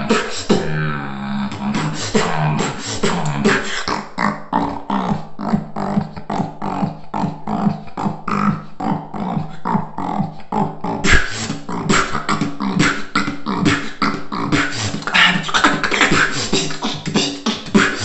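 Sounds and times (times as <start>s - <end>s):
beatboxing: 0.0s - 18.0s.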